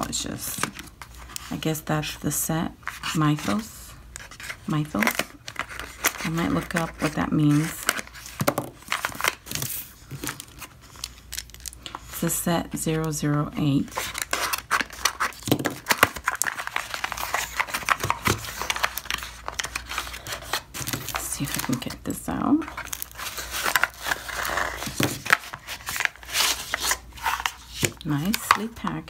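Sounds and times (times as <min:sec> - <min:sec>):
packaging rustling and crinkling: 0:02.8 - 0:12.2, 0:13.6 - 0:29.0.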